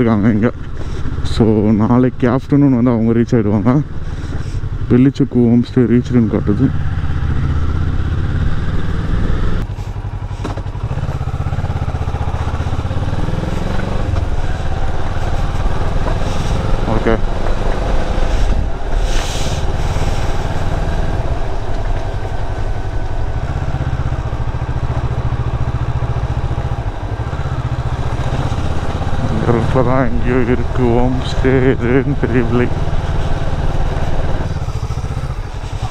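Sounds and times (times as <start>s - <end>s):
motorcycle engine revving: 0.0s - 35.9s.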